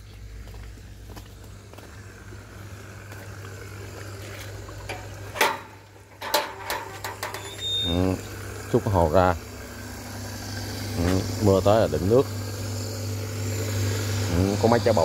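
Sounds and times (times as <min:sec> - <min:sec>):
electric water pump humming: 0:00.0 - 0:15.0
metal gate clanking: 0:04.9 - 0:08.0.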